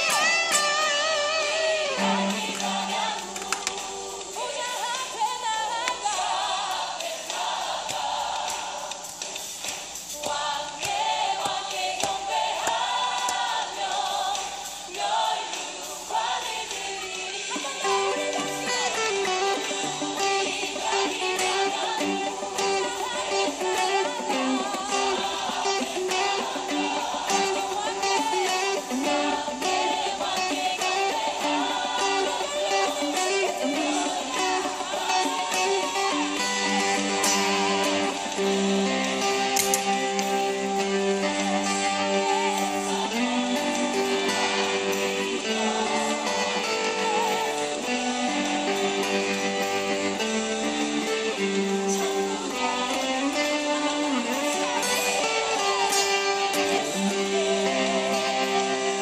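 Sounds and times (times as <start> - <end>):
electric guitar melody: 0.0 - 3.8, 17.8 - 59.0.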